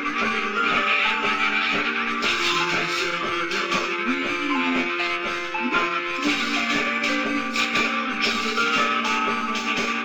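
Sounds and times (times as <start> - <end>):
steady drum beat: 0.0 - 10.0.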